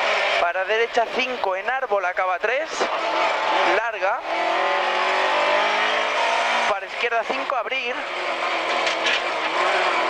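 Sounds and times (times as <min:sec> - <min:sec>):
car engine under throttle: 0:00.0 - 0:10.0.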